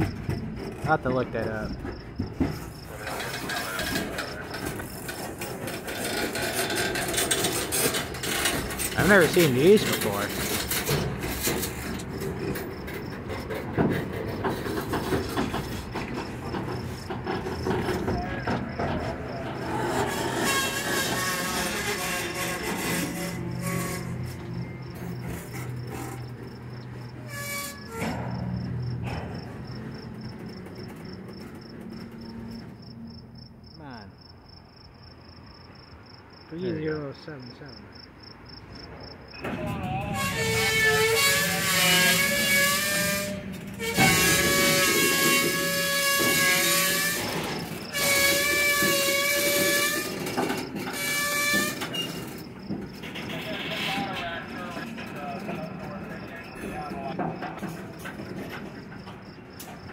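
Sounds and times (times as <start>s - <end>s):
freight train rolling: 0.0s - 59.9s
wheel flange squeal: 1.8s - 33.0s, 39.3s - 59.9s
locomotive horn blasts: 40.1s - 50.3s.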